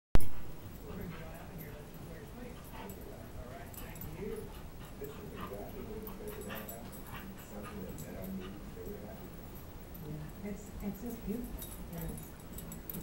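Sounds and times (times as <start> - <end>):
dogs play-fighting: 0.2 - 13.0
faint dog vocal noises: 0.2 - 13.0.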